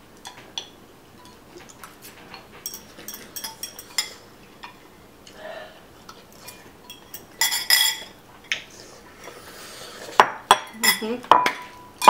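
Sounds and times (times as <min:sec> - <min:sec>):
utensils clinking against glass bowls: 0:02.6 - 0:04.8, 0:06.4 - 0:08.2, 0:10.5 - 0:12.0.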